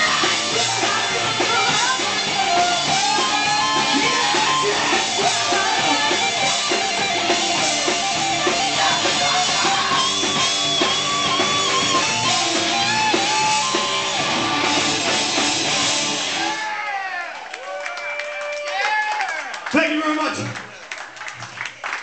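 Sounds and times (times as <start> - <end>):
electric guitar lead: 0.0 - 16.6
drum kit: 0.0 - 16.8.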